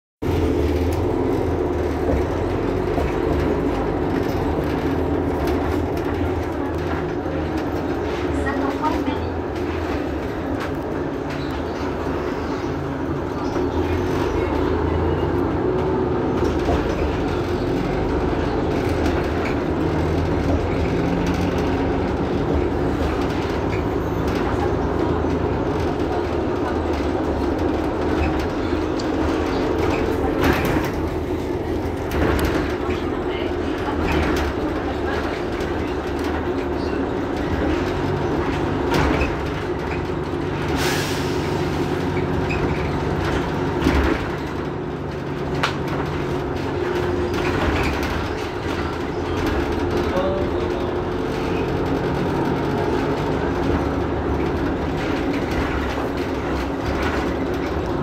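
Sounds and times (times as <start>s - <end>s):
bus engine idling: 0.2s - 58.0s.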